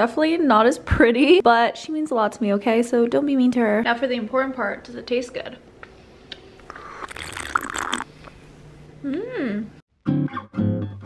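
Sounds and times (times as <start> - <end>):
slurping through a straw: 6.7 - 8.4.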